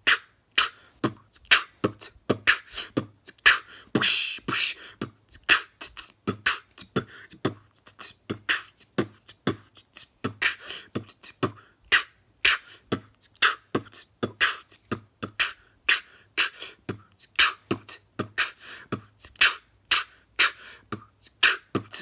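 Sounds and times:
person beatboxing: 0:00.0 - 0:22.0.

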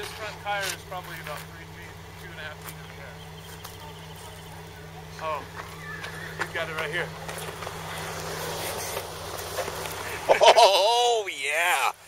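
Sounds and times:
car engine running at low revs: 0:00.0 - 0:12.0.

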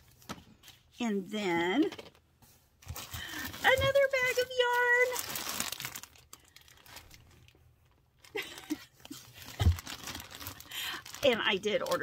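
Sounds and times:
plastic bag crinkling: 0:02.8 - 0:12.0.

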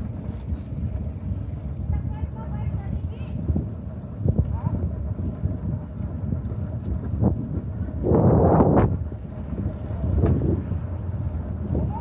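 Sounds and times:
wind buffeting microphone: 0:00.0 - 0:12.0
bike knocks and rattles: 0:08.9 - 0:12.0.

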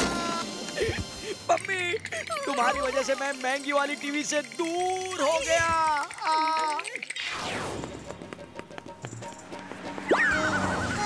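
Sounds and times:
background music: 0:00.0 - 0:06.2, 0:07.4 - 0:11.0
rising glide into warbling tone: 0:07.1 - 0:08.1, 0:10.0 - 0:11.0
falling whistle-like glide: 0:10.1 - 0:11.0.

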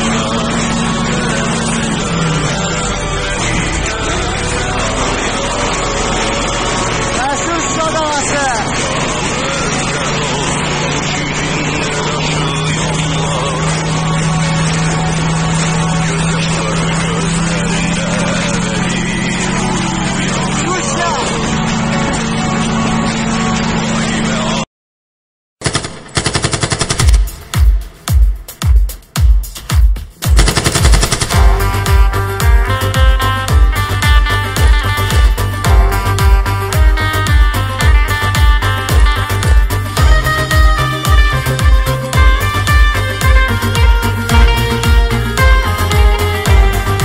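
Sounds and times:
voices: 0:00.0 - 0:23.1
car engine and road noise: 0:00.0 - 0:24.7, 0:30.1 - 0:47.0
rattle of sharp cracks: 0:30.4 - 0:31.4.

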